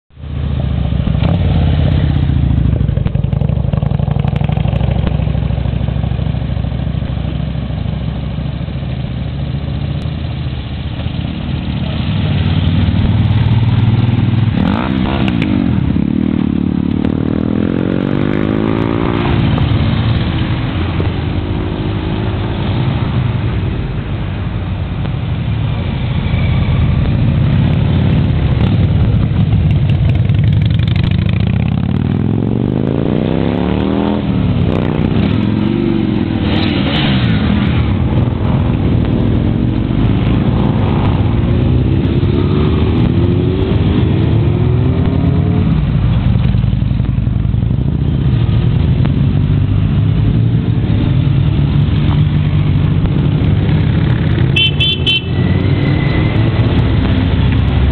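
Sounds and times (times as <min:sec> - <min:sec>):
motorcycles riding past: 0:08.9 - 0:24.0, 0:25.8 - 0:57.9.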